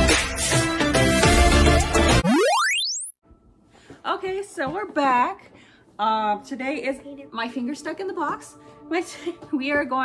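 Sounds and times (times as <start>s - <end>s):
rising electronic sweep: 2.2s - 3.2s.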